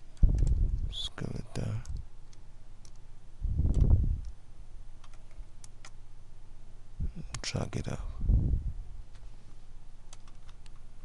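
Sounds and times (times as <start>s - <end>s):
faint steady hum: 0.0s - 11.0s
computer mouse clicks: 1.5s - 3.0s, 5.0s - 6.0s, 10.1s - 10.8s.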